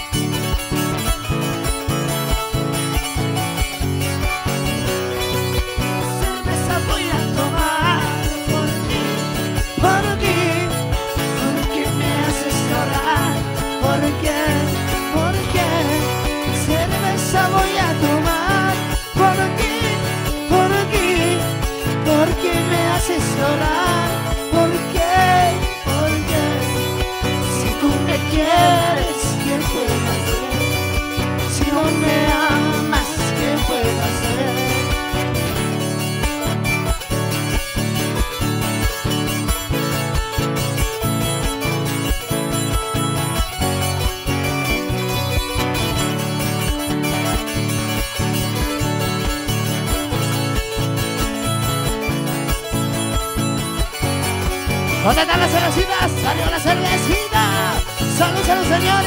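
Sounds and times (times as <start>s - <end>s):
charango playing: 0.0s - 59.0s
guitar playing: 0.0s - 59.0s.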